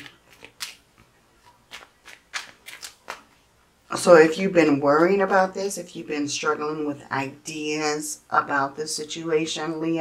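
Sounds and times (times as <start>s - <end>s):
cards being shuffled: 0.0s - 3.5s.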